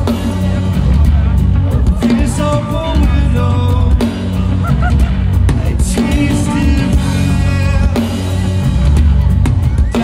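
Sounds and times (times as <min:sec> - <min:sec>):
bass guitar: 0:00.0 - 0:10.0
distorted electric guitars: 0:00.0 - 0:10.0
drums: 0:00.0 - 0:10.0.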